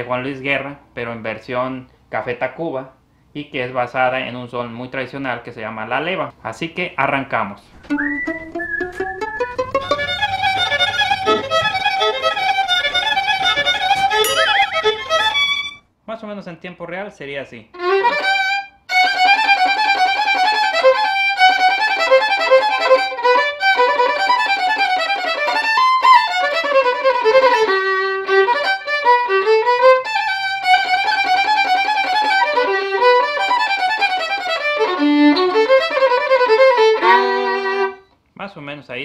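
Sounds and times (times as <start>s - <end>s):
solo violin fiddle melody: 9.2s - 15.8s, 17.8s - 38.0s.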